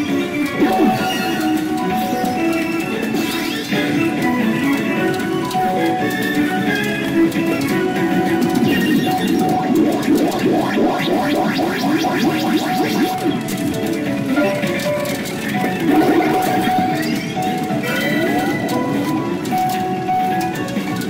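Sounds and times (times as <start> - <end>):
pachinko machine music: 0.0 - 21.0
rising sweep effects: 8.6 - 13.5.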